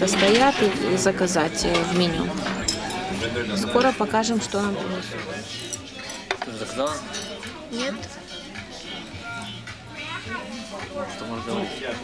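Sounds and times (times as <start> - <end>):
cutlery and dishes clinking: 0.0 - 12.0.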